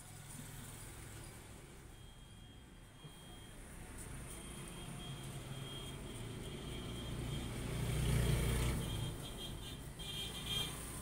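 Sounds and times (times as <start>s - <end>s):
vehicle passing by: 5.4s - 9.3s.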